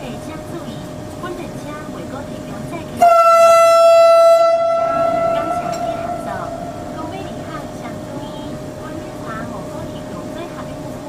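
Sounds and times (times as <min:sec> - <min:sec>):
warning tone: 0:03.0 - 0:07.9.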